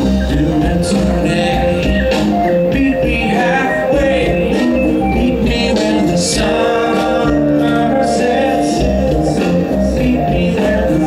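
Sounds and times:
distant rock band playing: 0.0s - 11.0s
person singing: 0.0s - 11.0s.

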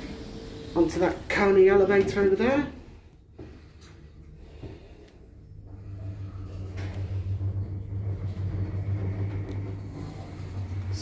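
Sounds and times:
lift drive humming: 0.0s - 11.0s.

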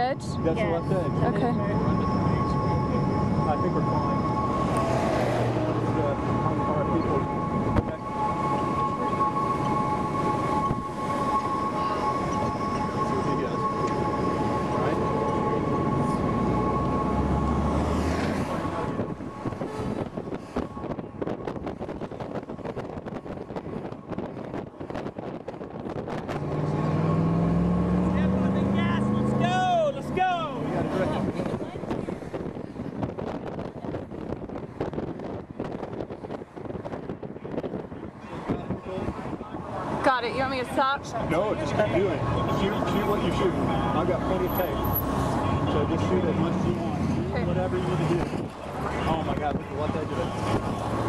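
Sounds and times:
two-note siren: 0.0s - 25.2s, 39.3s - 48.3s
siren swooping wail: 0.0s - 33.3s, 38.4s - 51.0s
vehicle accelerating: 0.0s - 37.0s, 37.8s - 51.0s
traffic noise: 0.0s - 51.0s
wind: 0.0s - 51.0s.

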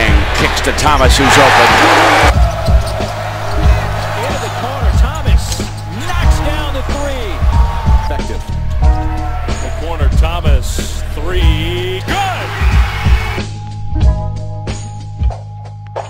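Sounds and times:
commentator talking: 0.0s - 2.2s
background music with bass line: 0.0s - 16.0s.

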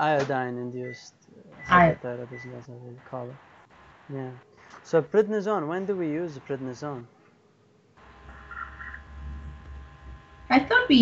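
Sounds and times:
low electrical hum: 0.0s - 11.0s
faint steady tones: 0.2s - 11.0s.

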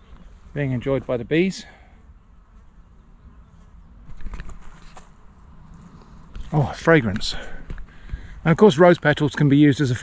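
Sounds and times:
faint rustles: 0.0s - 8.4s.

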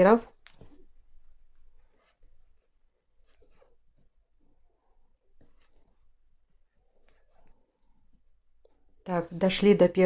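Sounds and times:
cord rustling: 0.0s - 9.4s
soft scrape of crochet hook: 1.8s - 6.2s.

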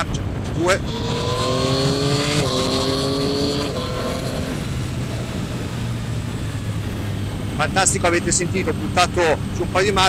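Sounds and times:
motorcycle engine revving: 0.0s - 10.0s
steady rush: 0.1s - 10.0s.

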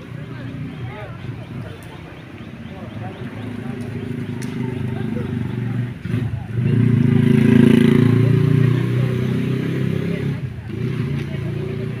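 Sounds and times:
people's voices: 0.0s - 12.0s
motorcycle engine passing: 0.1s - 12.0s.

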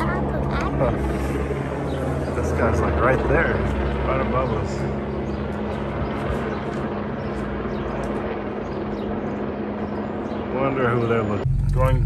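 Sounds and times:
helicopter rotor drone: 0.0s - 12.0s.

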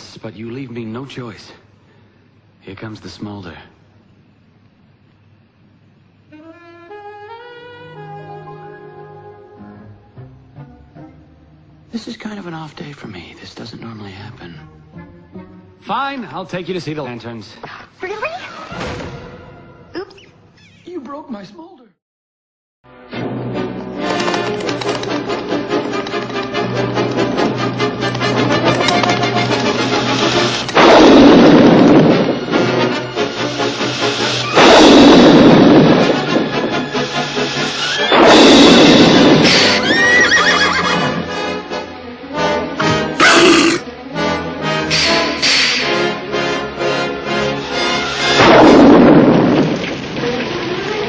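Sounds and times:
dramatic orchestral music: 22.9s - 51.0s
loud rushing fire blasts: 29.6s - 40.2s, 47.6s - 51.0s
horse whinnying: 37.8s - 38.8s, 39.4s - 41.3s, 43.2s - 43.8s.

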